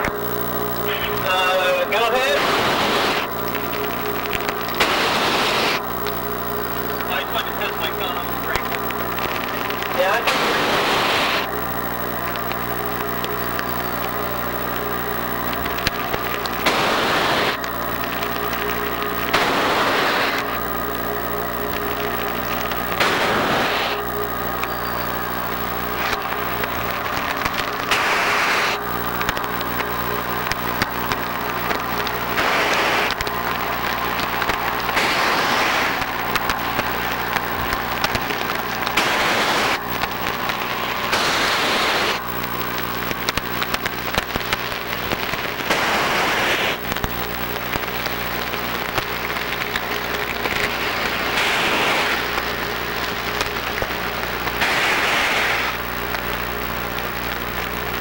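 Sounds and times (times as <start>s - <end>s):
steady electrical hum: 0.0s - 58.0s.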